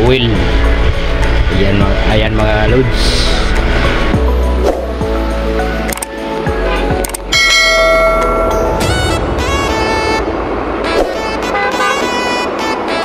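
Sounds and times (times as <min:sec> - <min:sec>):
background music: 0:00.0 - 0:13.0
sharp clicks: 0:05.8 - 0:06.2, 0:07.0 - 0:07.3
bright bell chime: 0:07.3 - 0:09.1.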